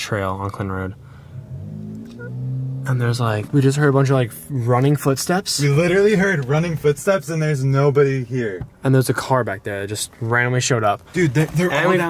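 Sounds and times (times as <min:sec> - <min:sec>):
car engine accelerating: 0:00.0 - 0:07.6.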